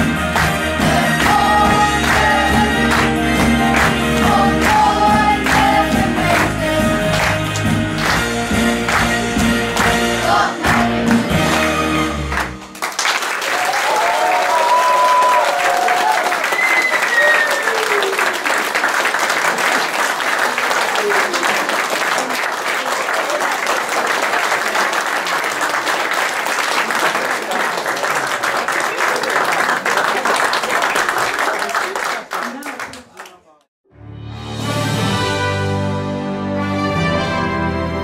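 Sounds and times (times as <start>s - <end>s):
audience applauding: 0.0s - 6.5s, 7.1s - 10.0s, 10.6s - 33.6s.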